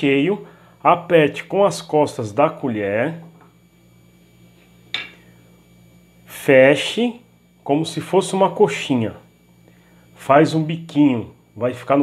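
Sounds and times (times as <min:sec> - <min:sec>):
metal spoon clinking dish: 0:05.0 - 0:05.2.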